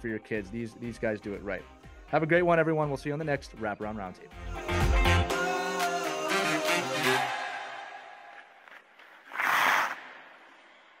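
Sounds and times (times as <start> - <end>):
closing music: 4.3 - 8.2.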